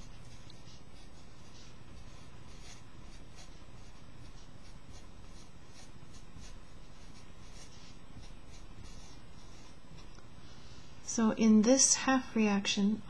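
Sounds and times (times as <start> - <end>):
marker writing on paper: 0.0 - 10.1.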